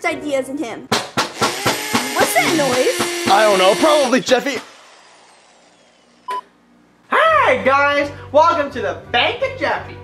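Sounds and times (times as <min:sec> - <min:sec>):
short electronic beep: 0:06.3 - 0:06.5.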